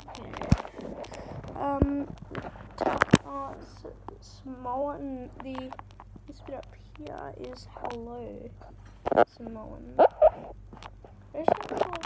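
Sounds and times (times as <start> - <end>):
child vocal sounds: 1.0 - 2.1.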